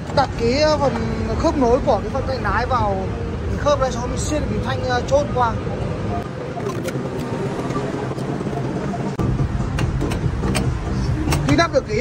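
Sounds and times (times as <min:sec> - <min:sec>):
steady background rumble: 0:00.0 - 0:12.0
light metallic clicks and knocks: 0:09.7 - 0:11.7.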